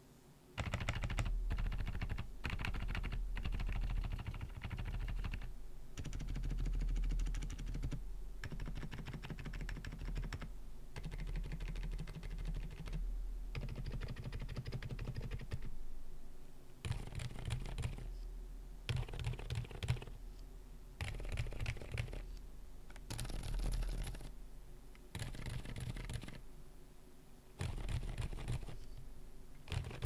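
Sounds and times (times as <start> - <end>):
typing on mechanical keyboard: 0.6 - 13.0, 13.6 - 15.7, 16.8 - 18.1, 18.9 - 20.1, 21.0 - 22.2, 22.9 - 24.3, 25.1 - 26.4, 27.6 - 28.8, 29.7 - 30.0.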